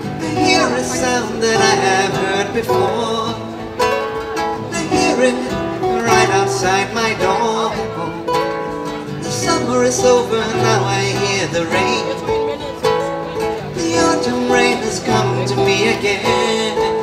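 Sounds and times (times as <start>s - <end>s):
person singing: 0.0s - 8.4s, 9.1s - 12.6s, 13.6s - 17.0s
acoustic guitars playing: 0.0s - 17.0s.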